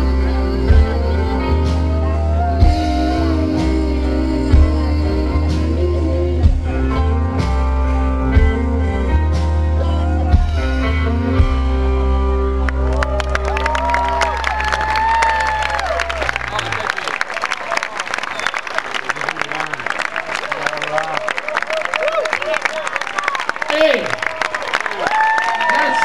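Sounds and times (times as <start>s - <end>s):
crowd clapping and cheering: 0.0s - 3.8s, 9.3s - 26.0s.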